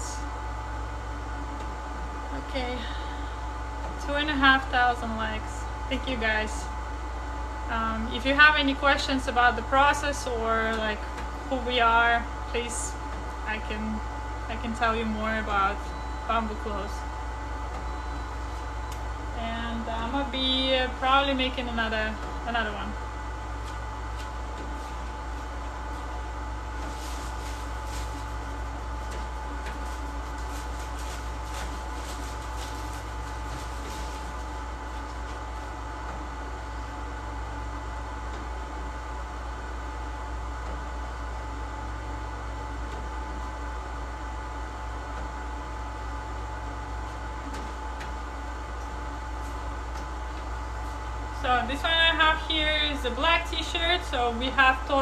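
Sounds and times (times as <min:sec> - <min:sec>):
printing machinery hum and whine: 0:00.0 - 0:55.0.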